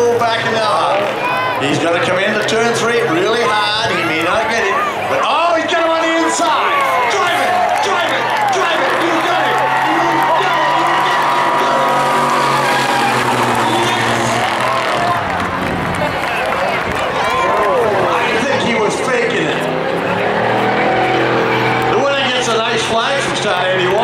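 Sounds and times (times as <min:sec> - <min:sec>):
voices: 0:00.0 - 0:24.0
truck engine running hard: 0:06.6 - 0:24.0.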